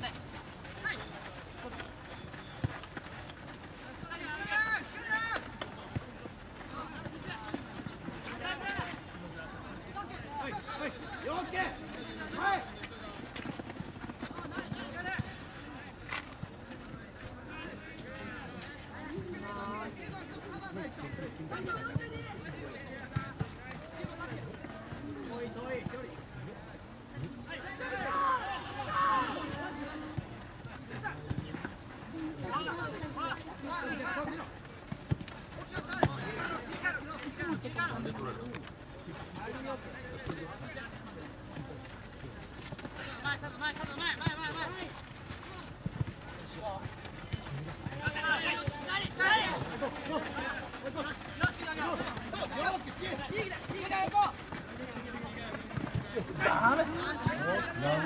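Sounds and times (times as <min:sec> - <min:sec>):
players calling out: 0:00.0 - 0:16.0, 0:27.2 - 0:58.0
outdoor background noise: 0:00.0 - 0:58.0
soccer ball kick thuds: 0:34.2 - 0:37.5, 0:42.6 - 0:57.5.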